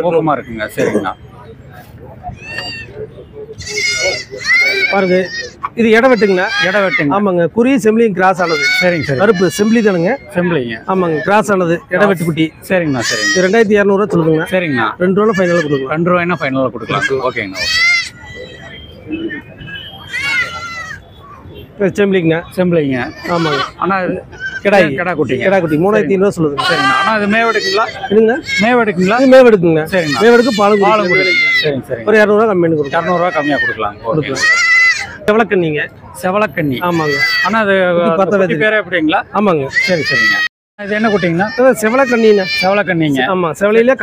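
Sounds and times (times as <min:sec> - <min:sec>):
man speaking: 0:00.0 - 0:01.4, 0:02.6 - 0:17.7, 0:21.8 - 0:34.6, 0:35.2 - 0:44.0
goat kids bleating: 0:03.6 - 0:05.6, 0:08.4 - 0:10.1, 0:12.8 - 0:13.7, 0:15.2 - 0:18.6, 0:20.1 - 0:21.1, 0:23.0 - 0:25.0, 0:26.6 - 0:29.4, 0:30.0 - 0:31.8, 0:32.8 - 0:35.2, 0:36.8 - 0:37.6, 0:39.7 - 0:42.8.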